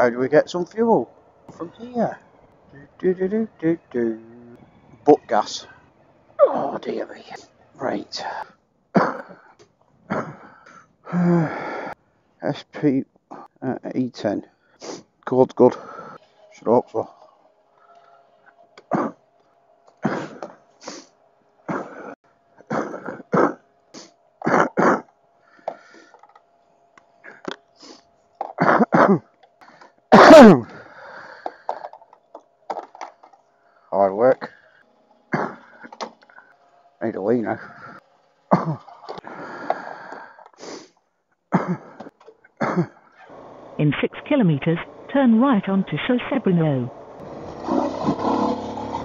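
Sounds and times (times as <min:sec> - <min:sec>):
man coughing: 0:08.9 - 0:09.5, 0:10.1 - 0:10.5, 0:18.9 - 0:19.2, 0:20.0 - 0:20.5, 0:21.7 - 0:23.6, 0:24.4 - 0:25.1, 0:28.5 - 0:29.4, 0:30.1 - 0:30.7, 0:35.3 - 0:35.8, 0:38.5 - 0:38.9, 0:41.5 - 0:43.0
man muttering and humming: 0:11.1 - 0:11.7, 0:30.2 - 0:30.8, 0:38.5 - 0:39.0.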